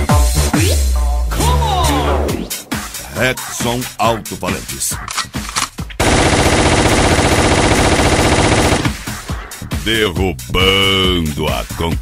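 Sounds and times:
machine-gun burst: 0:06.0 - 0:09.3.

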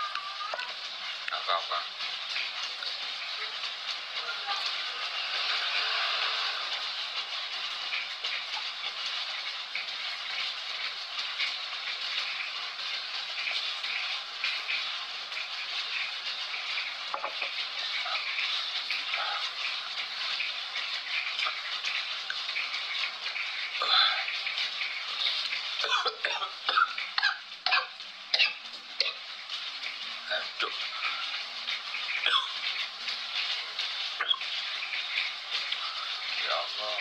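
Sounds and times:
steady rain-like hiss: 0:00.0 - 0:37.0.

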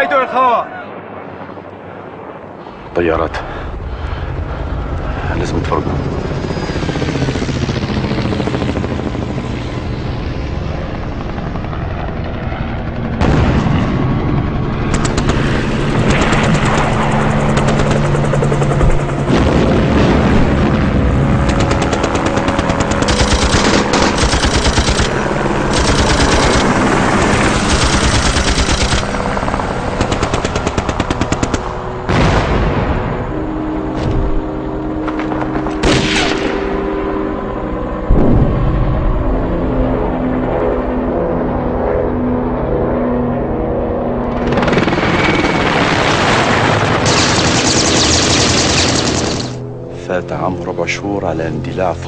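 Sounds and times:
steady low rumble: 0:00.9 - 0:41.4
helicopter rotor chop: 0:01.0 - 0:32.3, 0:33.1 - 0:49.9
machine-gun fire: 0:21.4 - 0:29.2, 0:30.0 - 0:32.8, 0:44.4 - 0:49.6.

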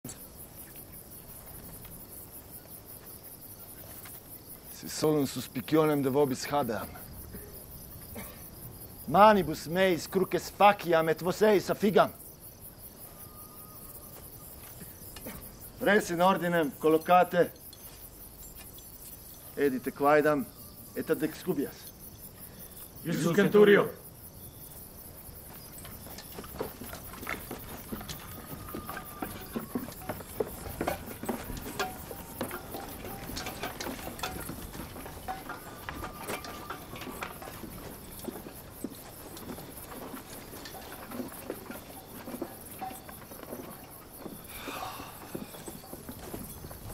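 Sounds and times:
crickets chirping: 0:00.0 - 0:46.9
footsteps on dry ground: 0:24.4 - 0:46.9.

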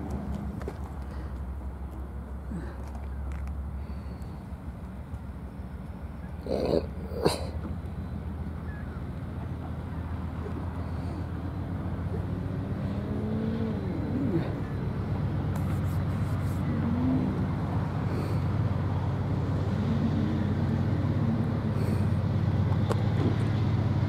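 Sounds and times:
diesel freight train rumble: 0:00.0 - 0:24.0.

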